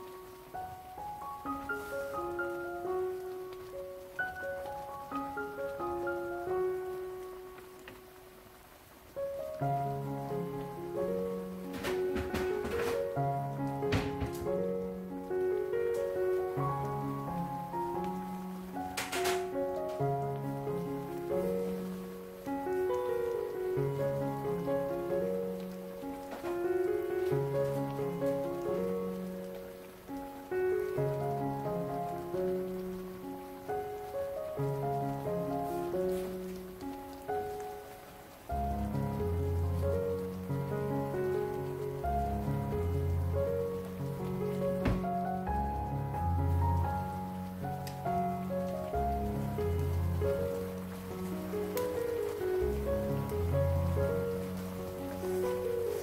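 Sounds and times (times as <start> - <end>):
syrup bubbling in a frying pan: 19.5 - 56.0.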